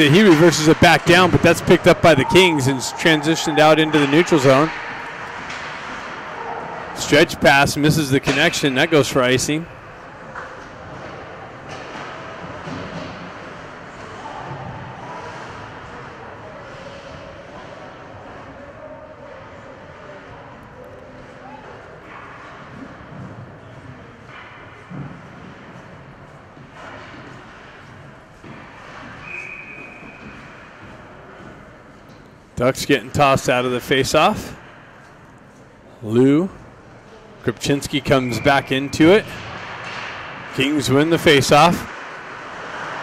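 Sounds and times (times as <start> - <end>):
indistinct voices echoing: 0.0 - 10.1.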